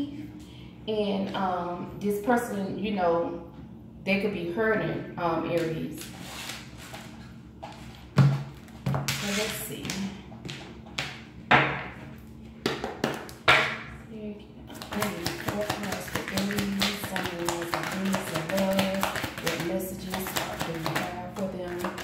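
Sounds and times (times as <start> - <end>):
cards tapping: 14.7 - 22.0.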